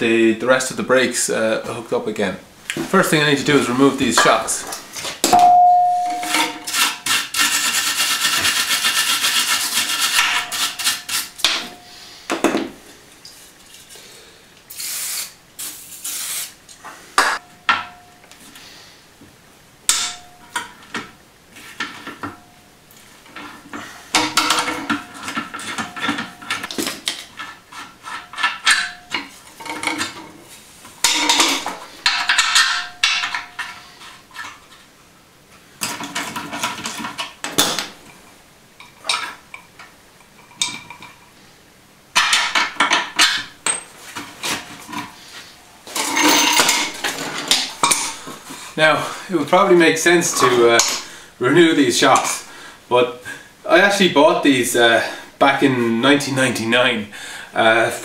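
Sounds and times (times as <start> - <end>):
metallic rings: 5.3 - 6.7.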